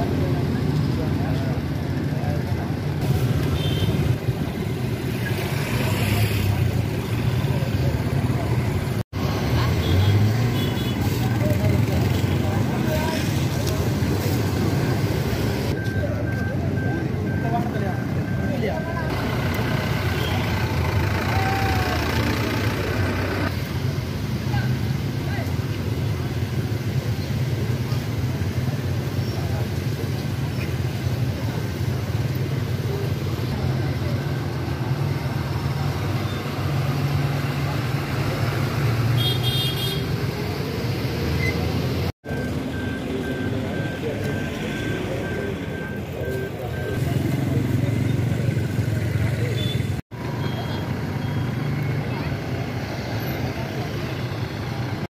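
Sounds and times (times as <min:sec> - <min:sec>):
crowd talking: 0:00.0 - 0:38.8, 0:40.0 - 0:55.0
vehicle engine rumble: 0:00.0 - 0:55.0.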